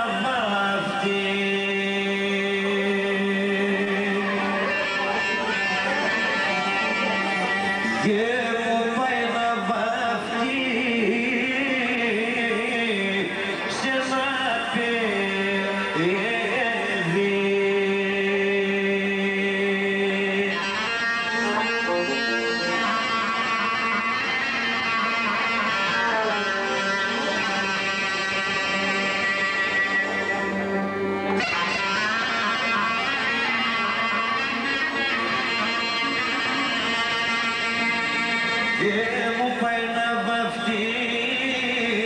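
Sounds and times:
keyboard accompaniment: 0:00.0 - 0:42.0
clarinet melody: 0:04.0 - 0:08.1, 0:20.5 - 0:39.0
plucked lute: 0:20.3 - 0:42.0.

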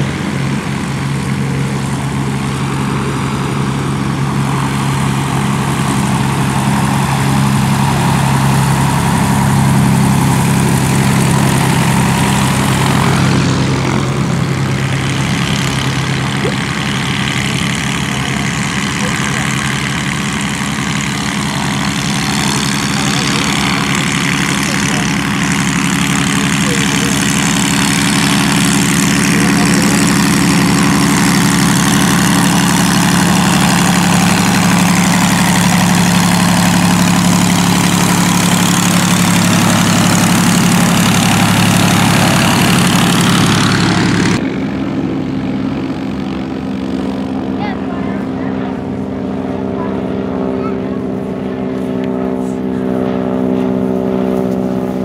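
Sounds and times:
propeller aircraft engines idling: 0:00.0 - 0:55.0.

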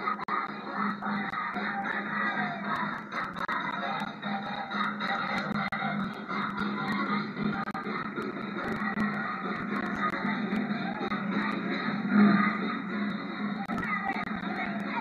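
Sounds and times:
music from television speaker: 0:00.0 - 0:15.0.

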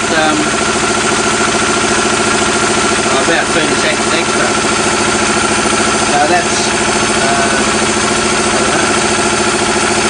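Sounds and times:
engine idling steadily: 0:00.0 - 0:10.0
steady high tone: 0:03.1 - 0:09.2.

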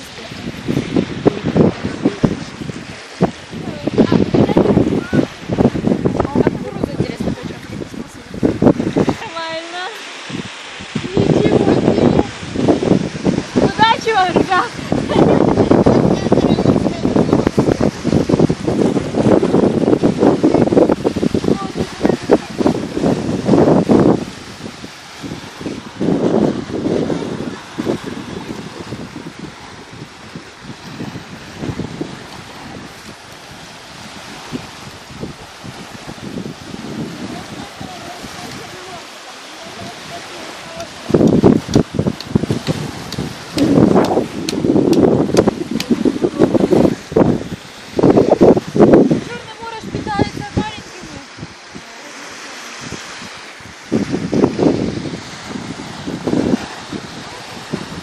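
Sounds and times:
sea wash: 0:00.0 - 0:58.0
wind buffeting microphone: 0:00.0 - 0:58.0.

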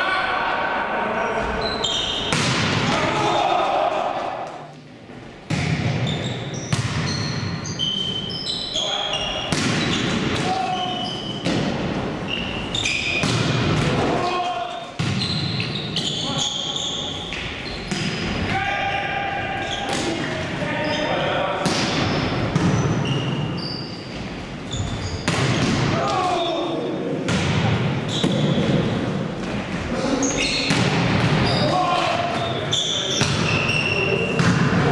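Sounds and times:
sneakers squeaking on floor: 0:01.4 - 0:02.6, 0:05.5 - 0:13.6, 0:14.7 - 0:26.7, 0:28.0 - 0:34.8
players calling out: 0:07.6 - 0:11.5, 0:18.3 - 0:22.2.

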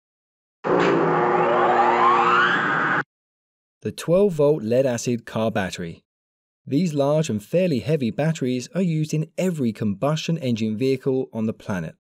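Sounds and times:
tone sweeping upward: 0:00.7 - 0:03.1.

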